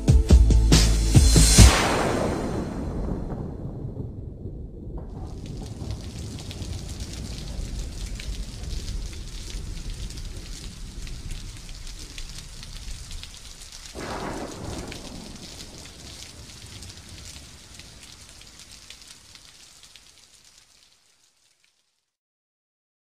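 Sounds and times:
dense crackling hiss: 0.8 - 22.2
low rumble: 0.9 - 11.6.

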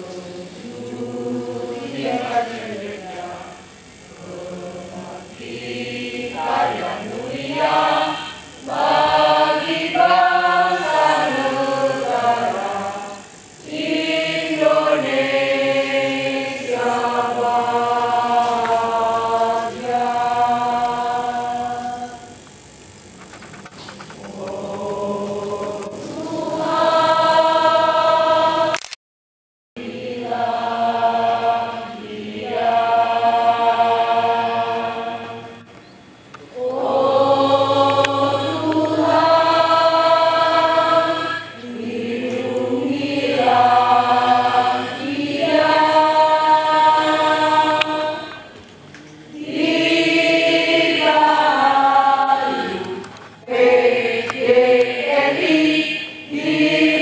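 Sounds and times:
choir singing long held notes: 0.0 - 22.6, 24.1 - 28.8, 29.8 - 57.0.

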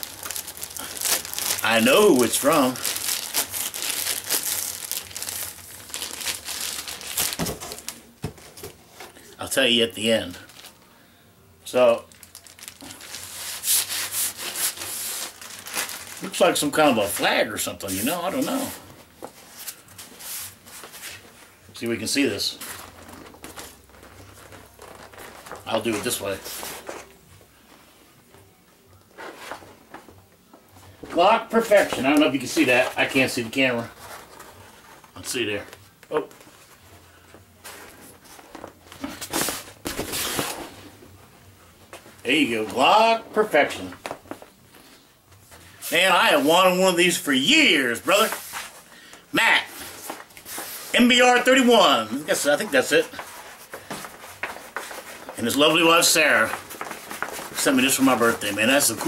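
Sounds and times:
packaging crinkling and rustling: 0.0 - 9.3, 10.1 - 10.8, 12.0 - 21.6, 22.6 - 27.1, 49.8 - 59.0
cloth flag rustling and flapping: 49.8 - 59.0.

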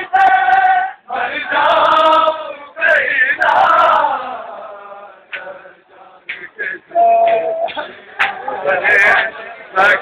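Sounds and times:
men chanting in a crowd: 0.0 - 10.0.

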